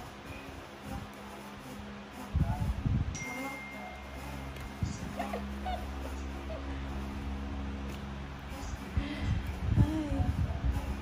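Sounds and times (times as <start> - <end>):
steady low hum: 0.0 - 11.0
high-pitched whimpers: 4.9 - 6.8.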